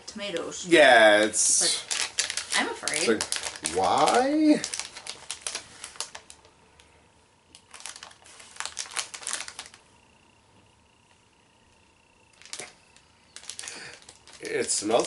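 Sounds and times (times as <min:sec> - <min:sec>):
candy wrapper crinkling: 0:01.5 - 0:06.5, 0:07.5 - 0:09.9, 0:12.3 - 0:15.0.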